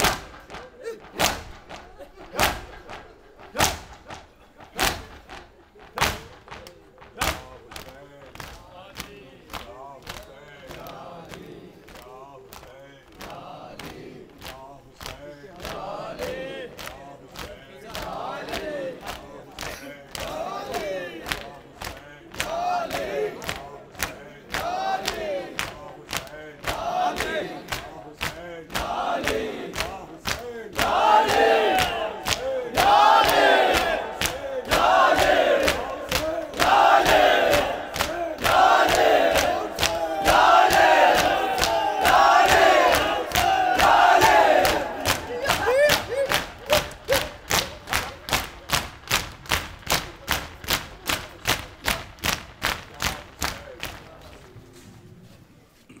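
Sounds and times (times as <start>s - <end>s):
crowd chanting loudly: 0.0s - 48.9s
rhythmic chest slaps: 0.0s - 54.8s.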